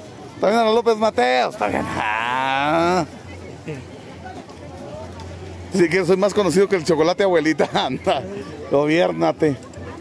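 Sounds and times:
faint crowd murmur: 0:00.0 - 0:10.0
man's drawn-out vocal call: 0:01.6 - 0:03.0.

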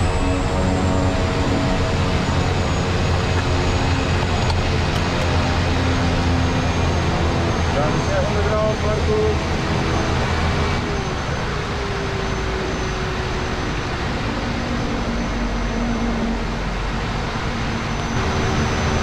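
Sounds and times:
plane engine and propeller drone: 0:00.0 - 0:19.0.

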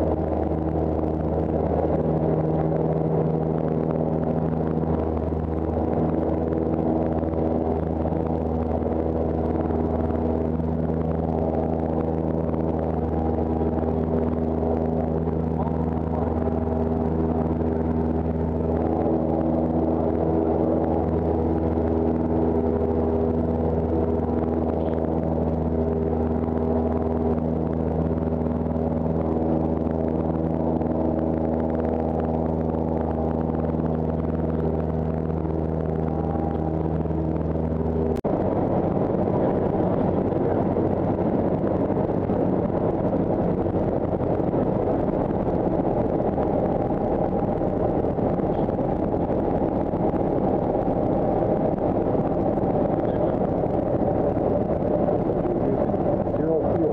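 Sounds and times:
aircraft engine and propeller drone: 0:00.0 - 0:56.9.

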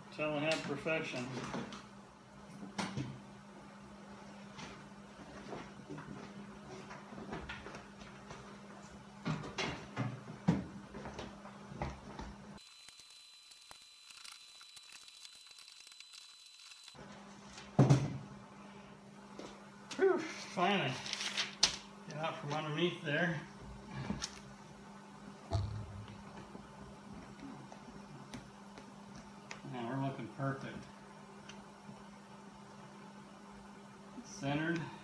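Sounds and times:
steady low hum: 0:22.0 - 0:33.0.

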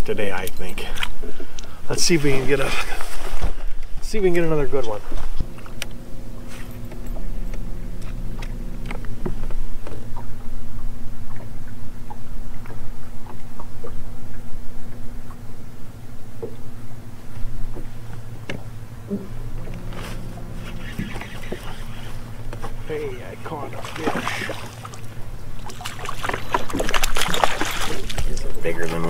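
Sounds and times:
electric trolling motor humming: 0:01.1 - 0:29.0.

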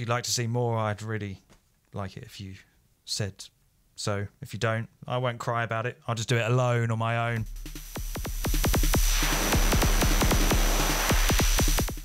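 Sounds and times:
synthesizer kick-drum bassline: 0:07.4 - 0:12.0.

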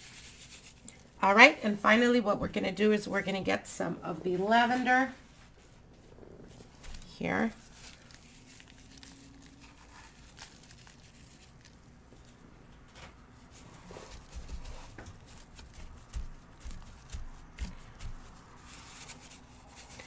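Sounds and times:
plastic gloves rustling: 0:00.0 - 0:01.1, 0:06.5 - 0:20.0.

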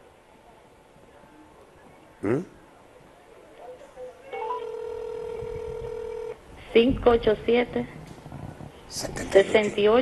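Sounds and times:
telephone ringback tone: 0:04.4 - 0:06.4.

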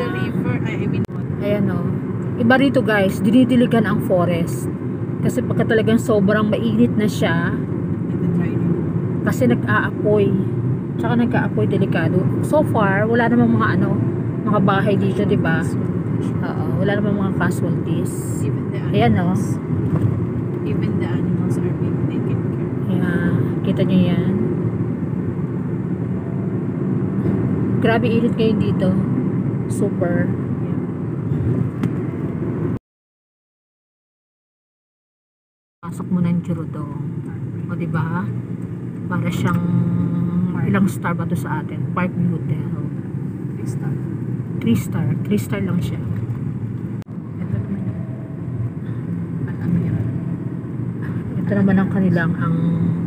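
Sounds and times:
car road and engine rumble: 0:00.0 - 0:32.8, 0:35.8 - 0:53.0.

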